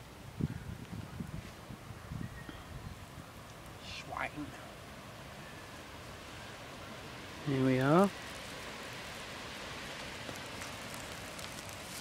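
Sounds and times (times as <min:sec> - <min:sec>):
meat sizzling on a grill: 0:07.4 - 0:12.0.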